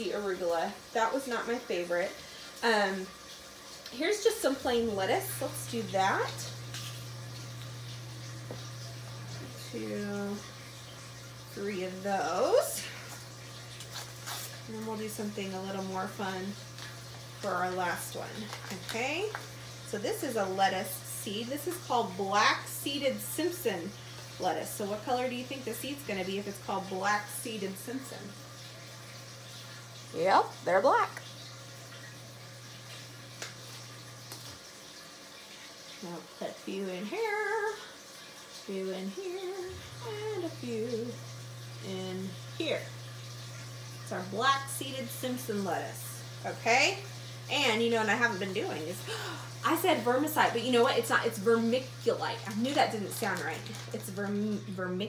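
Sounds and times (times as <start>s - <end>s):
electrical hum: 0.0s - 55.0s.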